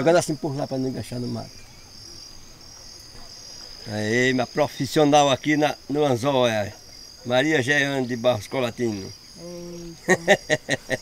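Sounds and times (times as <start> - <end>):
insects trilling: 0.0 - 11.0.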